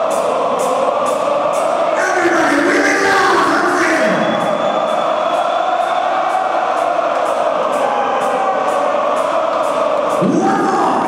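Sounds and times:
crowd singing along: 0:00.0 - 0:11.0.

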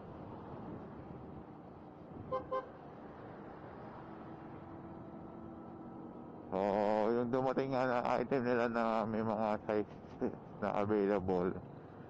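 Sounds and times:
road noise: 0:00.0 - 0:12.0
car horn beeps: 0:02.3 - 0:02.7.

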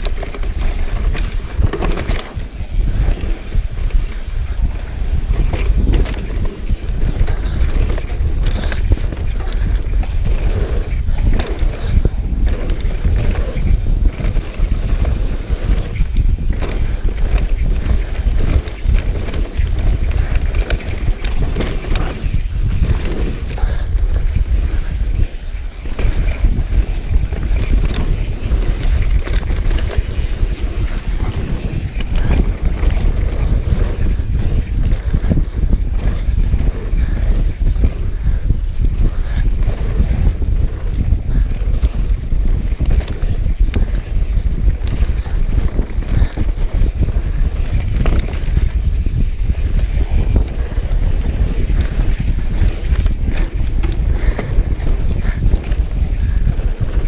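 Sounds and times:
bike rattling over bumps: 0:00.0 - 0:57.0
tyres rumbling on dirt: 0:00.0 - 0:57.0
wind buffeting microphone: 0:00.0 - 0:57.0.

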